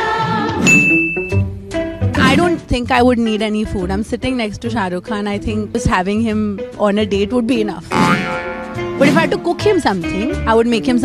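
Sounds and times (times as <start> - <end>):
background music: 0.0 - 11.0
bright high ding: 0.7 - 1.4.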